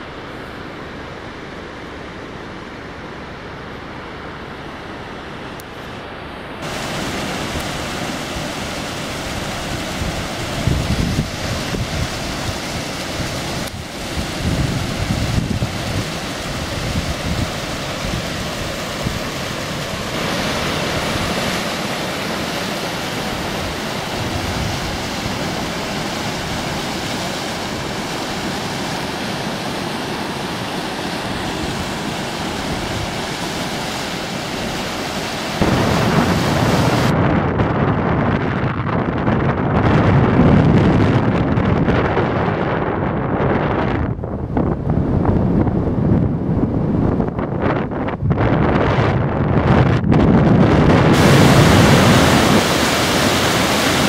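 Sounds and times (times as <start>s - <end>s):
river rushing over rocks: 6.6s - 37.1s, 51.2s - 54.0s
wind buffeting microphone: 6.6s - 54.0s.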